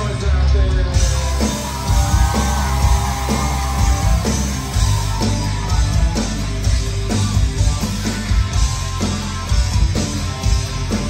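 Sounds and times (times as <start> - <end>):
bass guitar: 0.0 - 11.0
distorted electric guitars: 0.0 - 11.0
drums beating: 0.0 - 11.0.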